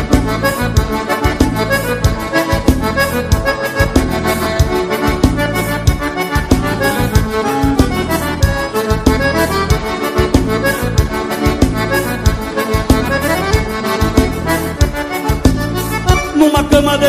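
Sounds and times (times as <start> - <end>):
accordion melody: 0.0 - 17.0
bass: 0.0 - 17.0
drums playing dance beat: 0.0 - 17.0.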